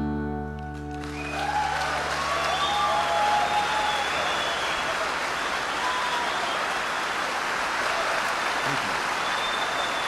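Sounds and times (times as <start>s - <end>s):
audience applause and cheering: 0.6s - 10.0s.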